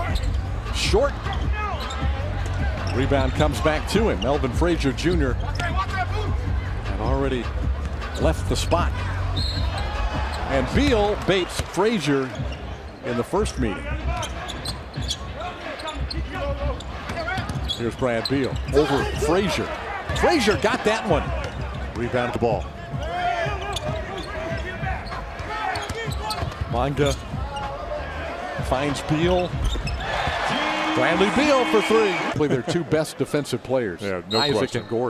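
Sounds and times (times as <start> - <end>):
arena crowd noise: 0.0 - 35.0.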